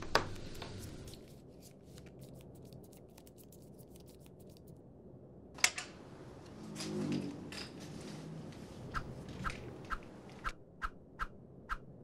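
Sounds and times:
playing cards being shuffled: 0:00.0 - 0:04.6.

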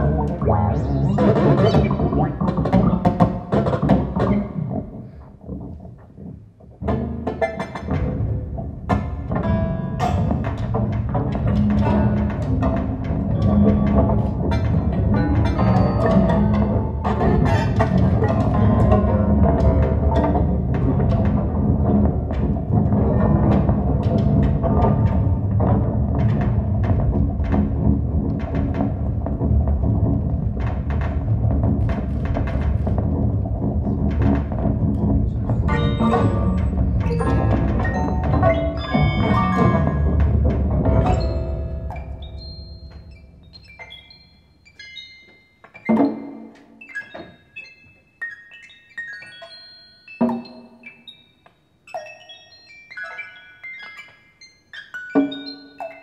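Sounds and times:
experimental percussive music: 0:00.0 - 0:56.0.

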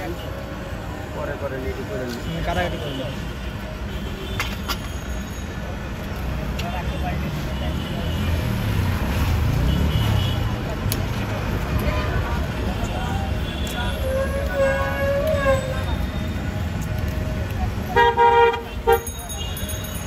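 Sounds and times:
passing vehicles rumble: 0:00.0 - 0:20.0
background chatter: 0:05.4 - 0:20.0.

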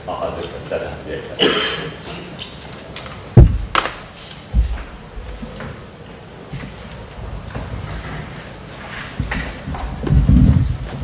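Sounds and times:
dull thumps and knocks: 0:03.4 - 0:03.9.

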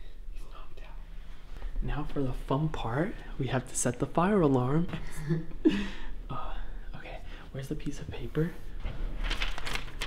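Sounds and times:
hushed whispering: 0:00.0 - 0:01.1
low steady hum: 0:00.0 - 0:10.0
man talking: 0:01.8 - 0:05.0, 0:06.3 - 0:08.8.

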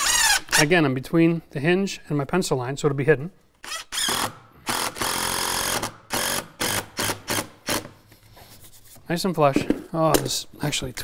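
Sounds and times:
impact driver driving a screw: 0:03.6 - 0:07.9.

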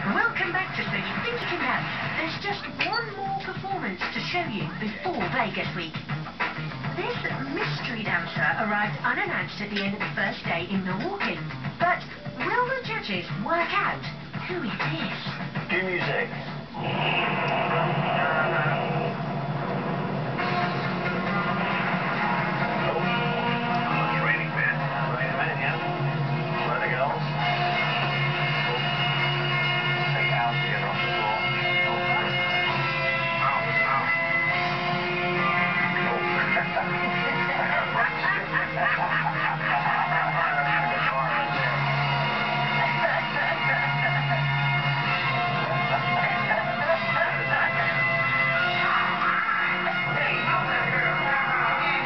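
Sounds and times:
television music: 0:00.0 - 0:52.0
television narration: 0:00.0 - 0:52.0.

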